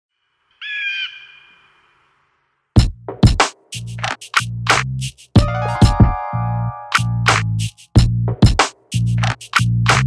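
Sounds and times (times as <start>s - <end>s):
high squawk-like call with echo: 0.4s - 2.2s.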